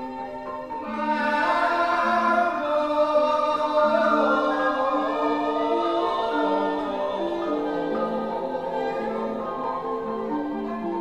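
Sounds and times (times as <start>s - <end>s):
chorus singing in unison: 0.0s - 11.0s
gamelan music: 0.0s - 11.0s.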